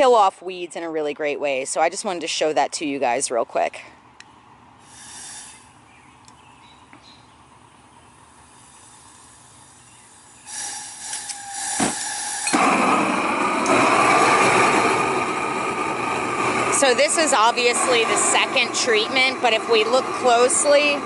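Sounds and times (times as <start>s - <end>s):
gas hissing: 4.8s - 5.8s, 8.0s - 21.0s
burner flame roaring: 8.1s - 21.0s.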